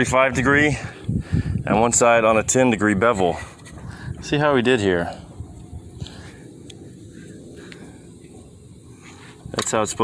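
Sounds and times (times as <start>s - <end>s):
wind rumble on microphone: 0.0s - 4.5s, 5.1s - 9.6s.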